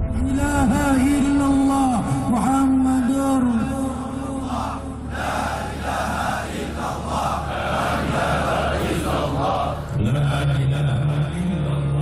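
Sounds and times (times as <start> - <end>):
men chanting in unison: 3.0 - 12.0
man's low voice: 9.6 - 12.0.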